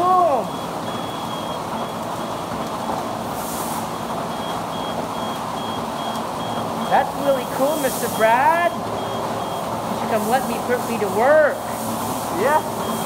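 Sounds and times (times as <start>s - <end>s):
car wash brushes and spray: 2.2s - 4.4s, 6.8s - 13.0s
high electronic beeper: 6.8s - 9.7s.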